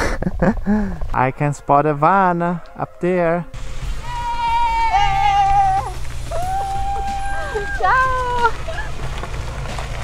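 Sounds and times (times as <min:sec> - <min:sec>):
camper van engine running: 0:03.6 - 0:10.0
woman's high drawn-out cheering: 0:04.0 - 0:08.9.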